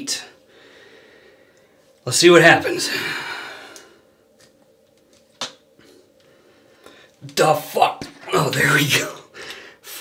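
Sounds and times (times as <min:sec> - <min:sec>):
breathy exhale: 0:00.5 - 0:01.8, 0:02.9 - 0:04.1.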